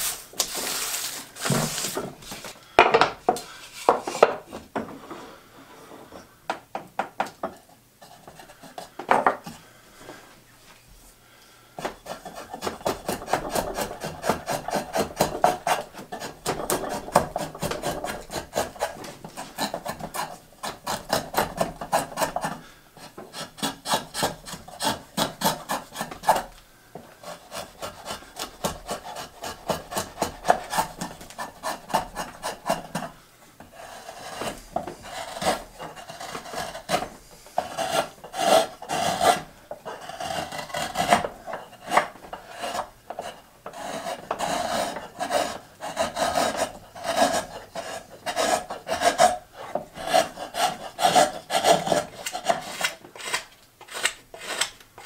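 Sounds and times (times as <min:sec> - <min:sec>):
rasp scraping wood: 0:07.4 - 0:09.6, 0:11.8 - 0:26.6, 0:27.2 - 0:55.0
carving knife slicing wood: 0:11.8 - 0:22.6, 0:23.3 - 0:26.5, 0:27.2 - 0:33.1, 0:33.8 - 0:49.4, 0:50.0 - 0:54.8.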